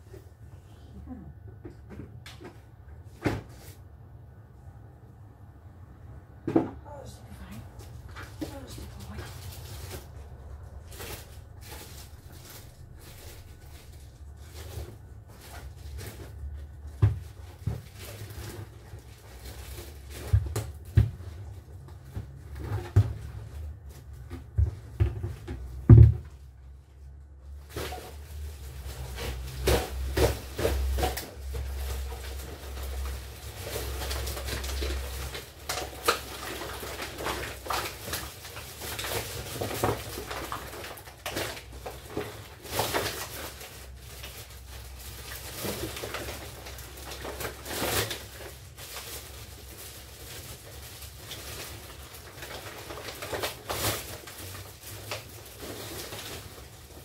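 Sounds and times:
household items clattering: 27.6s - 57.0s.

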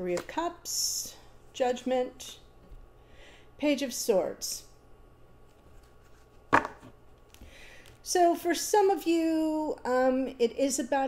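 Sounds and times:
cards knocking on tabletop: 6.5s - 7.0s.

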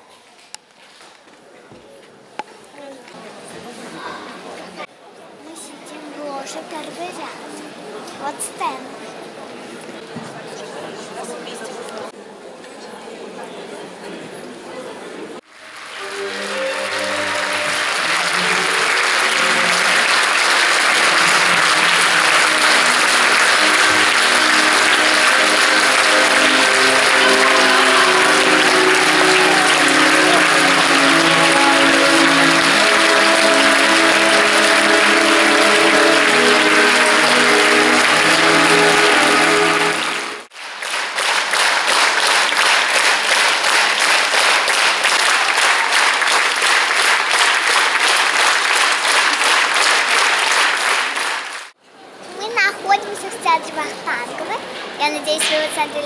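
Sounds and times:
audience applauding: 15.4s - 51.8s
music with sustained notes: 15.6s - 40.5s.

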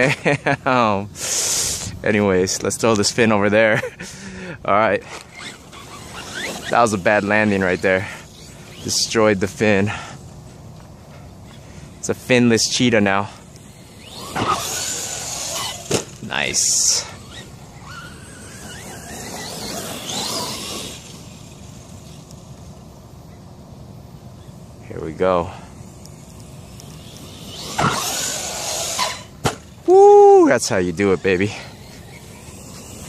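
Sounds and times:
electric motor whining: 5.0s - 9.8s, 12.8s - 33.0s.

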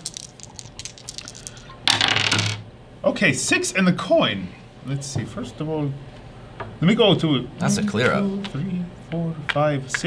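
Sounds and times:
plastic coins clattering on wood: 0.0s - 2.6s.

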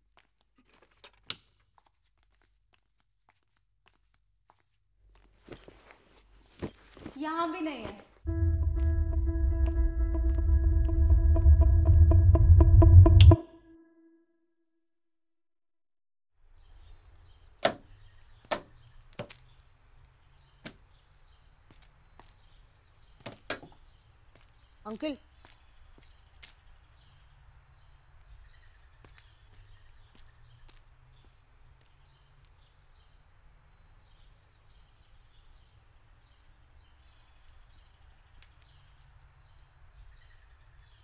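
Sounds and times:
objects being handled and moved: 5.2s - 8.2s.

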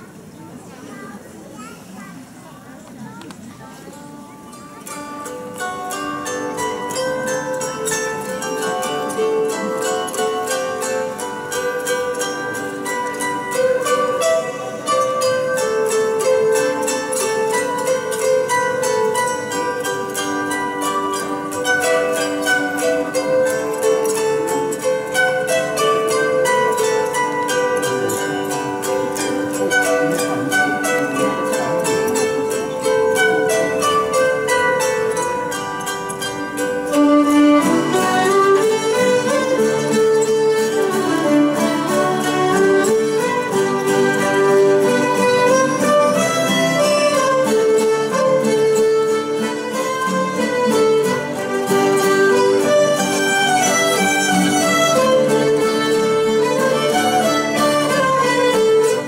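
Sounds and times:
bowed fiddles: 0.0s - 59.0s
plucked zither melody: 0.0s - 59.0s.

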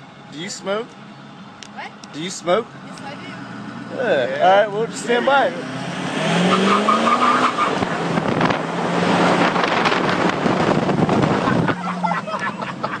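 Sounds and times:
road noise: 0.0s - 13.0s
car engine accelerating: 1.0s - 13.0s
wind buffeting microphone: 7.7s - 11.8s.

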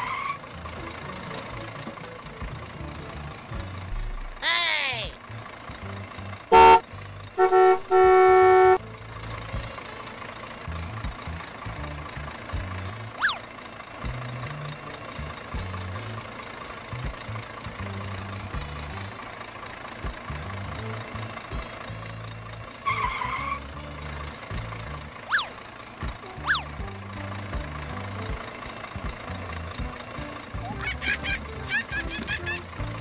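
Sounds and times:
background music with bass line: 5.0s - 10.0s, 10.6s - 13.2s, 14.0s - 16.3s, 16.9s - 19.2s, 19.9s - 25.2s, 26.0s - 33.0s
whistle-like sweep: 25.3s - 25.5s.

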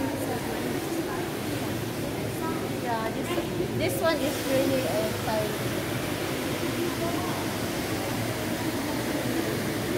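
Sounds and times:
busy shopping mall background noise: 0.0s - 9.9s
faint voices talking: 0.0s - 9.9s.

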